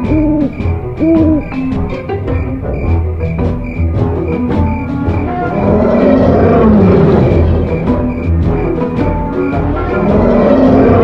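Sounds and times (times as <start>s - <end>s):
owl hoots: 0.0s - 1.6s
background music with steady beat: 0.0s - 11.0s.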